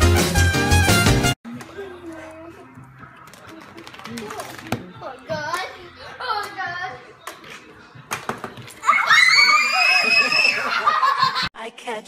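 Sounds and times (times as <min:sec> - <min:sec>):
high-pitched scream of laughter: 0:08.8 - 0:11.3.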